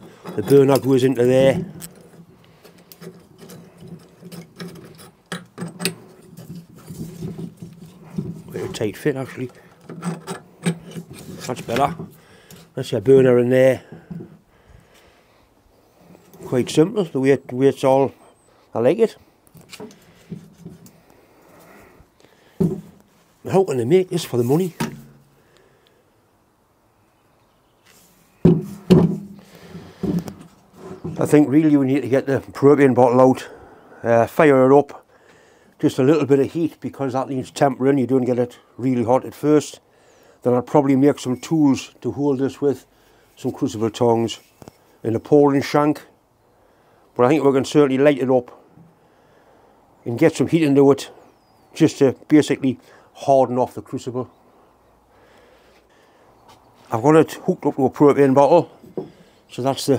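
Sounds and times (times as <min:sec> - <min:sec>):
metal clicks scrapes and knocks: 0:00.0 - 0:12.8
metal knocking on wooden table: 0:22.6 - 0:22.9.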